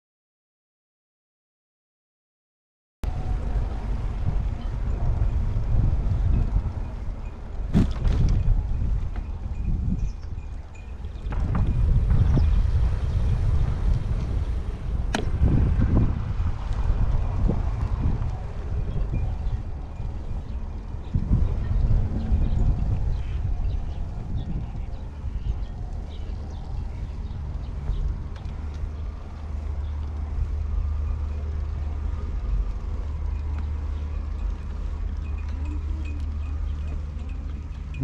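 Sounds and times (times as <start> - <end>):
wind buffeting microphone: 3.1 - 38.0.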